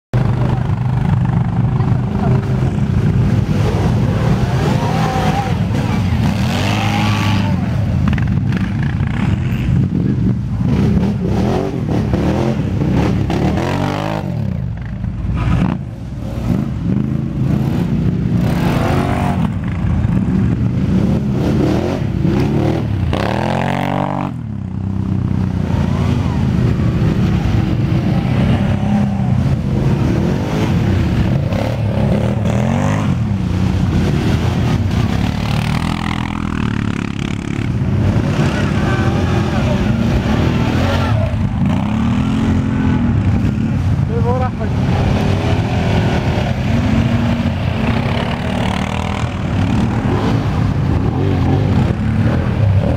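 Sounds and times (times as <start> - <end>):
quad bike engine revving: 0.2 - 52.9.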